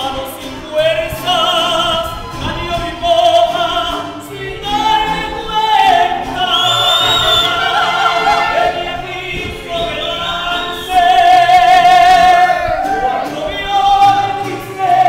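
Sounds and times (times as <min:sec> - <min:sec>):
group of singers with vibrato: 0:00.0 - 0:15.0.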